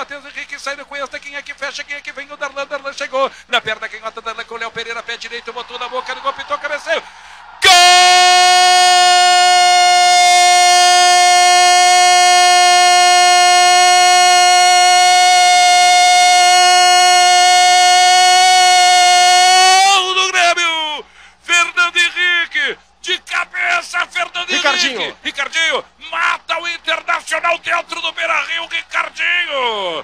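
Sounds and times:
man shouting goal commentary: 0:07.6 - 0:30.0.

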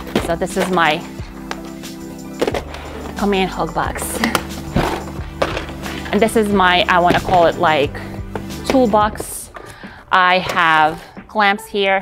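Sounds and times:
plastic boxes knocking and rattling: 0:00.0 - 0:01.7, 0:02.3 - 0:10.8
background music: 0:00.0 - 0:12.0.

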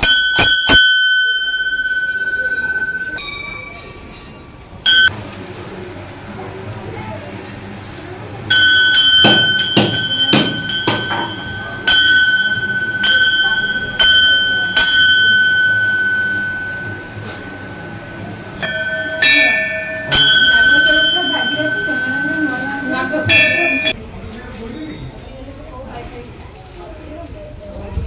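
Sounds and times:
temple bell ringing: 0:00.0 - 0:05.2, 0:08.5 - 0:24.0
second bell struck: 0:08.5 - 0:24.0.

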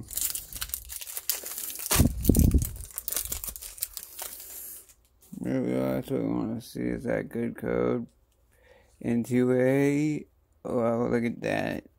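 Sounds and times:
foil wrapper crinkling and tearing: 0:00.0 - 0:05.1.

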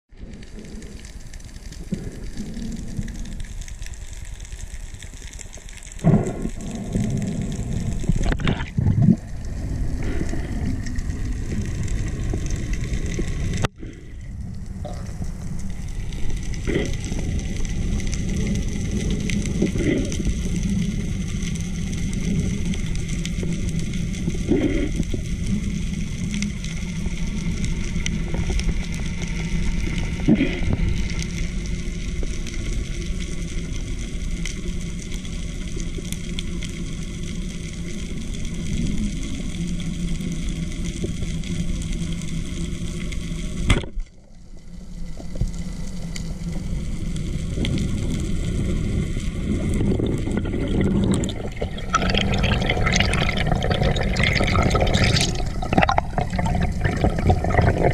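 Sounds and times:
underwater rumbling of moving water: 0:00.1 - 0:57.9.

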